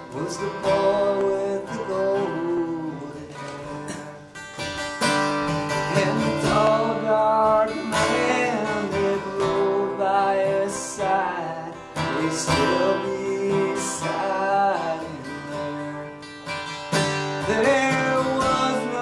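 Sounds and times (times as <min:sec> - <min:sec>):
man singing a ballad: 0:00.0 - 0:04.6, 0:05.4 - 0:19.0
acoustic guitar: 0:00.0 - 0:19.0.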